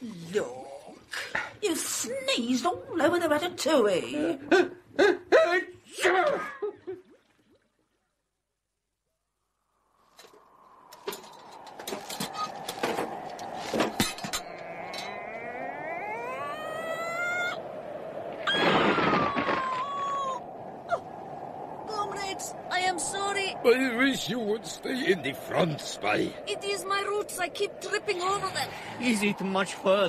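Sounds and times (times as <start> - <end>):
whistling wind drone: 9.8 - 30.0
howling: 10.0 - 30.0.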